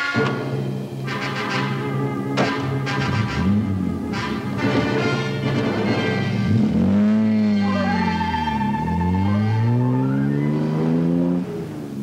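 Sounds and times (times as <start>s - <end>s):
dramatic orchestral music: 0.0s - 6.9s.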